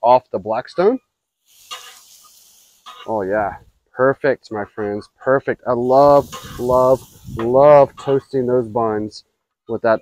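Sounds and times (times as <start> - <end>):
food sizzling on a griddle: 1.3 - 3.7, 5.7 - 9.1.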